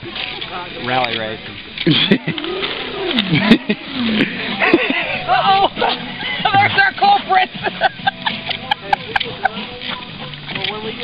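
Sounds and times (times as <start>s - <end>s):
person laughing: 3.2s - 6.8s, 7.4s - 9.6s.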